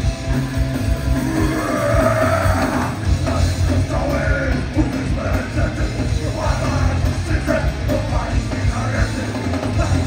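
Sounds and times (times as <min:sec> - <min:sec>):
punk rock band playing live: 0:00.0 - 0:10.0.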